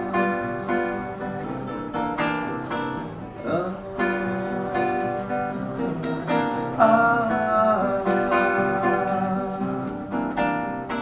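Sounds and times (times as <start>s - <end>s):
wavering wordless singing: 0.0s - 2.1s, 3.2s - 10.4s
classical guitars playing: 0.0s - 11.0s.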